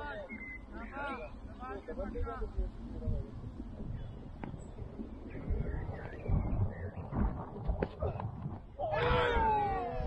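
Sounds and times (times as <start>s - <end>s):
wind rumbling on microphone: 0.0s - 10.0s
player's long shout: 8.8s - 10.0s.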